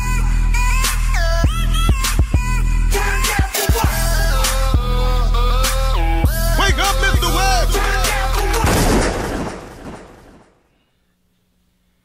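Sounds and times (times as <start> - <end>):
booming hit tail: 8.6 - 10.6.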